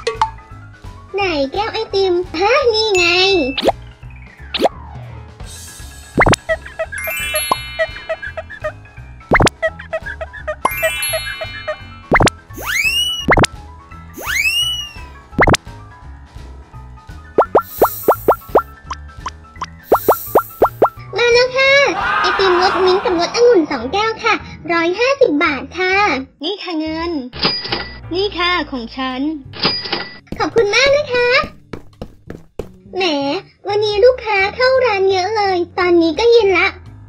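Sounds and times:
light children's music: 0.0 - 37.0
fast popping sounds: 6.2 - 6.6, 9.3 - 9.6, 12.1 - 13.5, 14.2 - 15.6, 17.4 - 19.0, 19.6 - 21.0
rising chime runs: 7.0 - 8.2.

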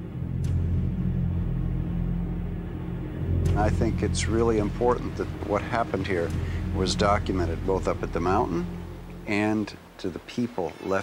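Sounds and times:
low rumbling drone: 0.0 - 10.2.

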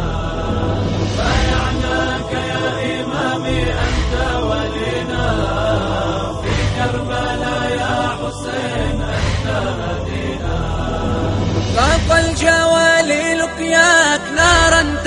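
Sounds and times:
low bass drone: 0.0 - 13.7
voices chanting: 0.0 - 15.0.

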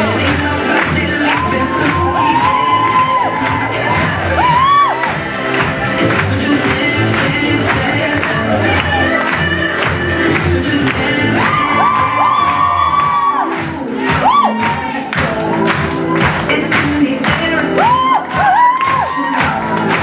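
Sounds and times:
pop music with steady beat: 0.0 - 20.0
crowd cheering: 0.7 - 16.6, 17.4 - 20.0.

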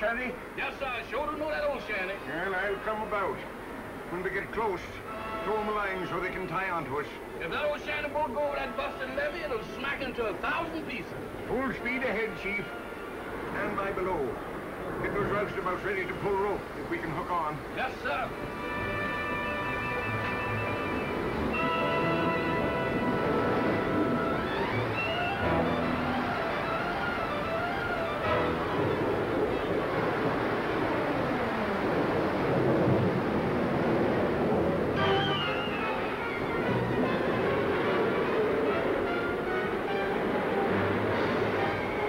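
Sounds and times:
flood water rushing: 0.0 - 42.0
dramatic orchestral music: 18.2 - 30.5, 33.2 - 42.0.

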